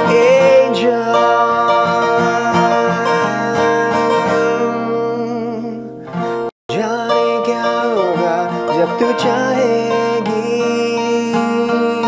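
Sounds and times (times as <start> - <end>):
man singing: 0.0 - 6.1, 6.7 - 12.0
acoustic guitar strummed and picked: 0.0 - 12.0.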